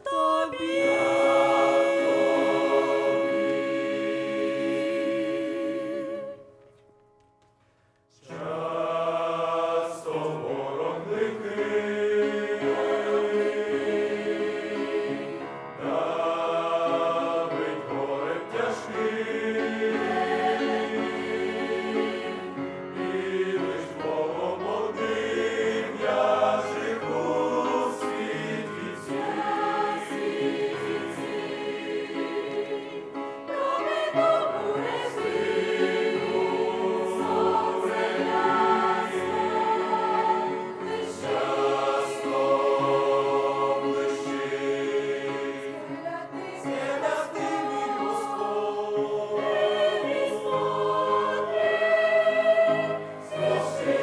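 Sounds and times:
choir singing a hymn: 0:00.0 - 0:06.6, 0:08.1 - 0:54.0.

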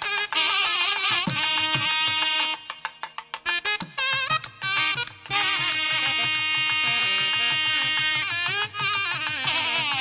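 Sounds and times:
quick even drum beats: 0:00.0 - 0:10.0.

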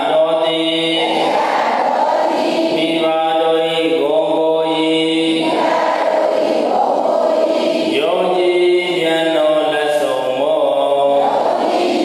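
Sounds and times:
voices chanting in a drone: 0:00.0 - 0:12.0.

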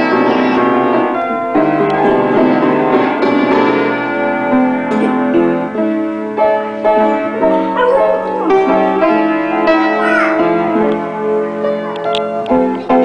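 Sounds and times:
piano keys plunked randomly: 0:00.0 - 0:13.0.

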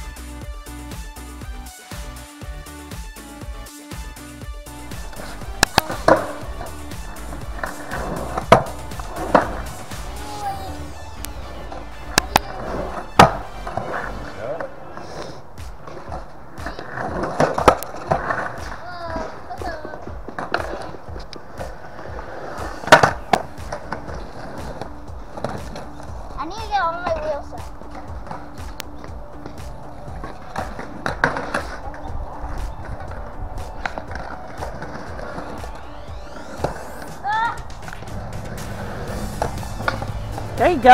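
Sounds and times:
music playing: 0:00.0 - 0:40.9
skateboard wheels rolling on concrete: 0:00.0 - 0:40.9
skateboard clacking on concrete: 0:05.0 - 0:40.9.

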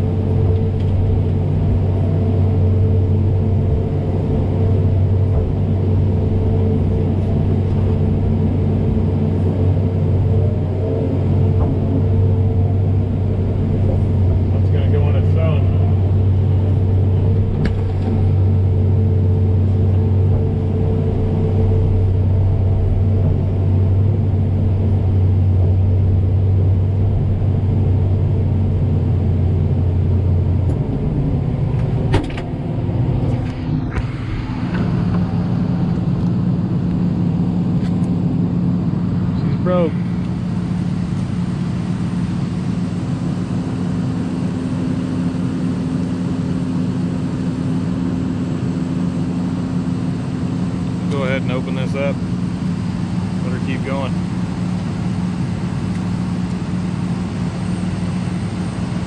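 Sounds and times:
excavator engine and hydraulics: 0:00.0 - 0:59.0.

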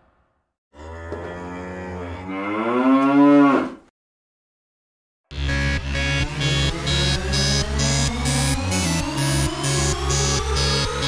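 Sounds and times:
cow mooing: 0:00.8 - 0:03.9.

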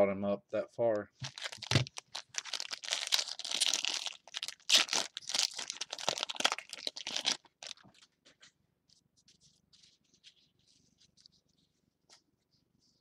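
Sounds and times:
foil wrapper tearing and crinkling: 0:01.2 - 0:08.0.

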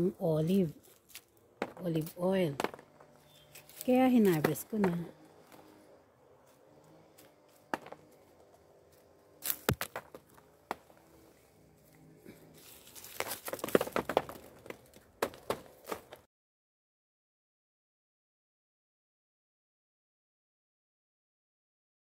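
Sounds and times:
leaves rustling: 0:00.2 - 0:16.2
twigs clicking: 0:00.8 - 0:05.7, 0:08.9 - 0:10.9, 0:11.7 - 0:16.2
olives dropping onto plastic sheet: 0:02.6 - 0:02.9, 0:09.4 - 0:10.2, 0:12.8 - 0:16.2.

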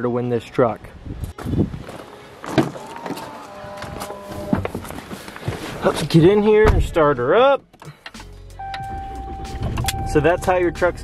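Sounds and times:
footsteps and knocks: 0:01.3 - 0:05.7
truck door opening: 0:06.5 - 0:10.5.

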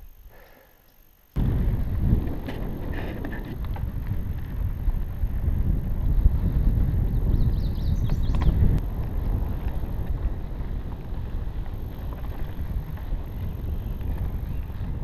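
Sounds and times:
bike rumbling over dirt trail: 0:01.4 - 0:15.0.

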